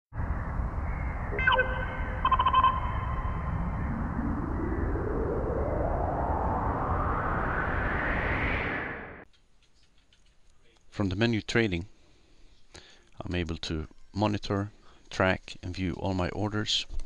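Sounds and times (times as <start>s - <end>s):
low rumbling noise: 0.1s - 9.3s
wavering tone: 1.1s - 9.2s
rising whoosh: 1.3s - 9.2s.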